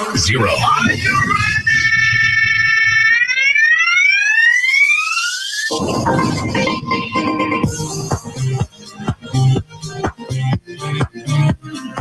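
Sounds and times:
electronic music: 0.0s - 12.0s
rising synthesized tone: 0.1s - 8.6s.

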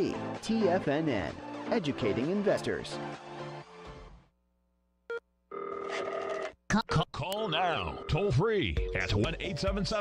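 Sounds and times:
telephone ringing: 5.5s - 6.6s, 7.6s - 8.4s.

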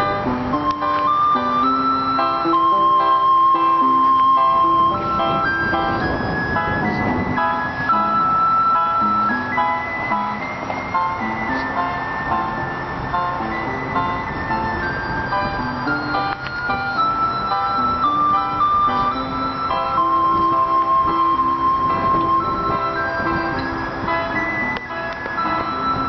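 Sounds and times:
toy electronic keyboard melody: 0.0s - 26.0s.

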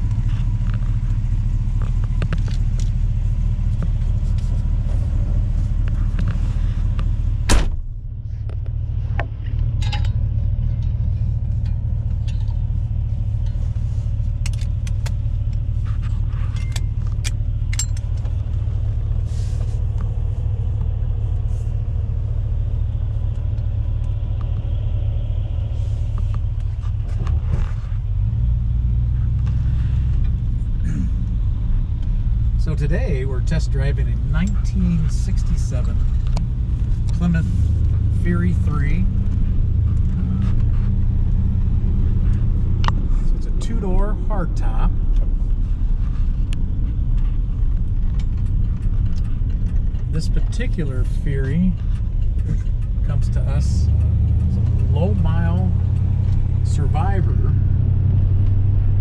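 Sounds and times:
car engine rumble: 0.0s - 59.0s
road noise: 0.0s - 59.0s.

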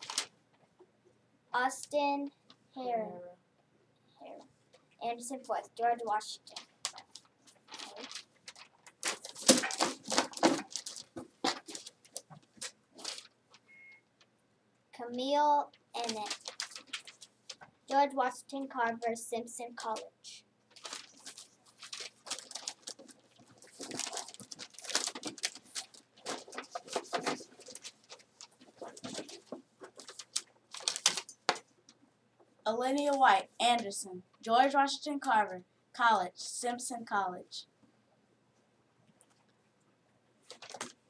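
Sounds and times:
paper slips rustling: 6.2s - 14.0s, 15.9s - 18.4s, 19.7s - 20.1s, 20.7s - 31.6s, 40.5s - 41.0s.

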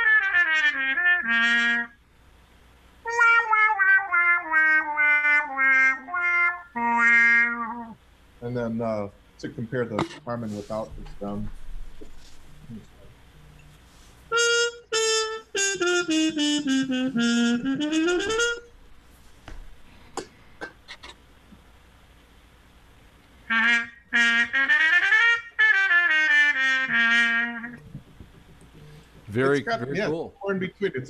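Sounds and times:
muted trumpet playing: 0.0s - 2.0s, 3.0s - 8.0s, 14.3s - 18.7s, 23.4s - 28.0s.

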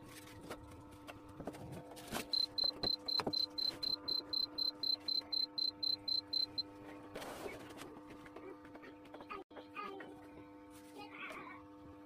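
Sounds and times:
steady low hum: 0.1s - 10.9s
digital timer beeping rapidly: 2.3s - 6.6s.

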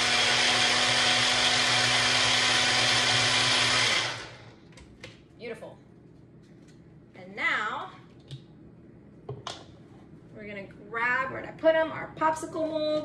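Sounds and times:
blender motor whirring: 0.0s - 4.6s.

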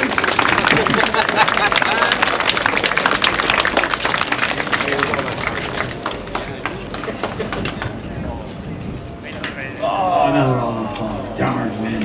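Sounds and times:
crowd clapping: 0.0s - 8.0s.

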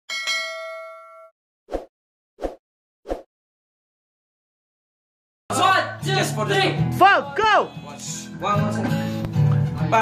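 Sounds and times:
notification bell ding: 0.1s - 1.3s.

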